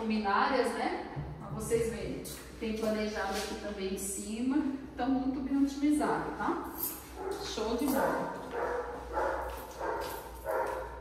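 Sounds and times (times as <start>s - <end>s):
dog barking: 7.2s - 11.0s.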